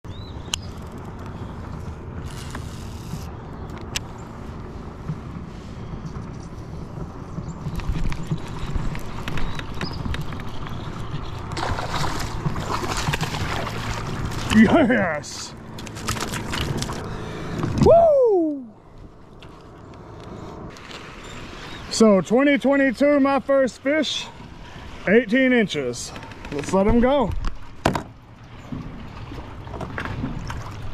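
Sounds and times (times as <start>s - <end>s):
wind rumble: 0.0s - 14.5s
faint water beside kayak hull: 0.1s - 30.9s
fish splashing in water: 8.2s - 14.6s.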